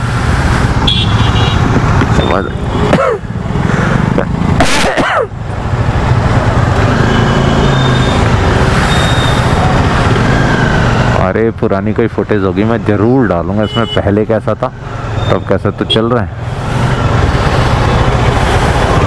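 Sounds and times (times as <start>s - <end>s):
motorcycle engine hum: 0.0s - 4.6s, 5.3s - 11.2s
wind and road noise: 0.0s - 19.0s.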